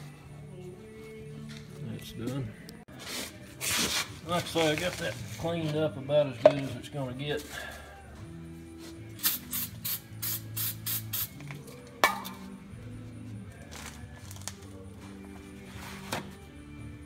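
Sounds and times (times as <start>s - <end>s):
aerosol spray can hissing: 9.2s - 11.4s.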